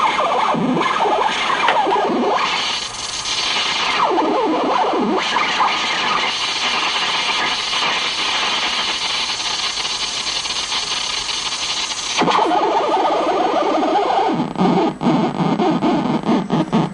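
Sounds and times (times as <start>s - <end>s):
harsh hissy electronic noise: 0.0s - 16.9s.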